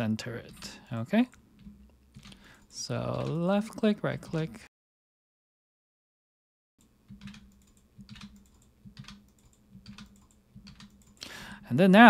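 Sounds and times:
keyboard keystrokes: 3.1 - 3.5, 7.1 - 11.2.

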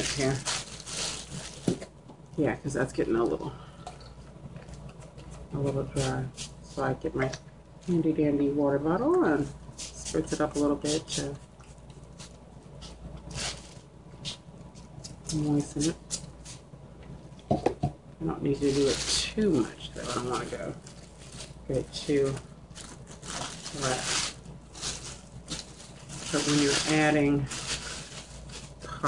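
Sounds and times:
plastic bag crinkling: 0.0 - 2.0, 9.8 - 13.9, 18.5 - 29.0.

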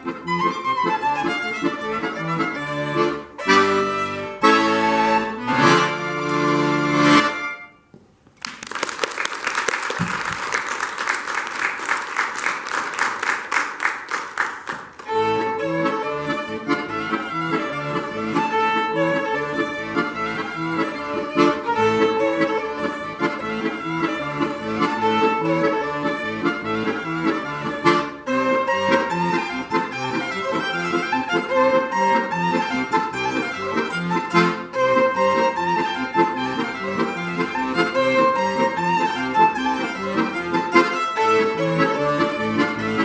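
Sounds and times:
accordion playing: 0.0 - 7.9, 10.4 - 43.0
violin melody: 0.0 - 7.9, 15.0 - 43.0.

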